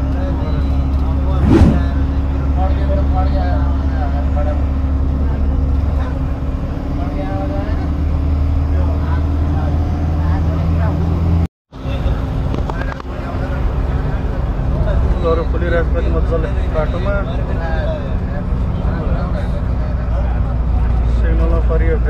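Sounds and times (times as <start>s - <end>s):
road noise inside cabin: 0.0s - 22.0s
vehicle engine drone: 0.0s - 22.0s
sharp thump: 1.4s - 2.0s.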